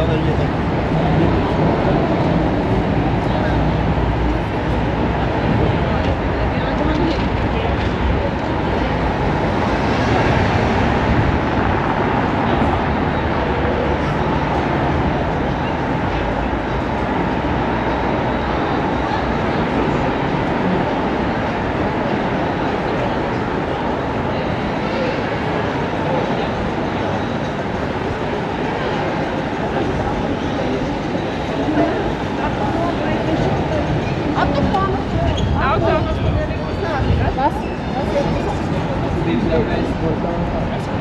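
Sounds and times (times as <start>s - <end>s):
passers-by talking: 0.0s - 41.0s
traffic noise: 0.0s - 41.0s.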